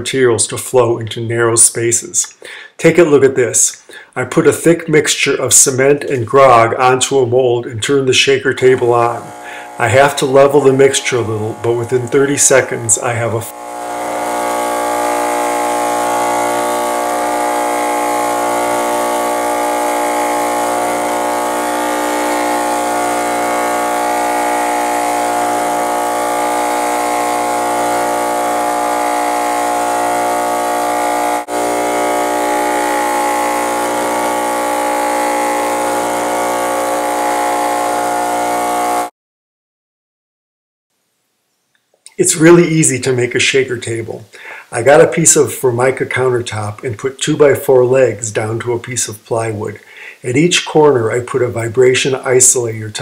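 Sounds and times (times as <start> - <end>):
shaker table mechanical hum: 8.4 - 39.1.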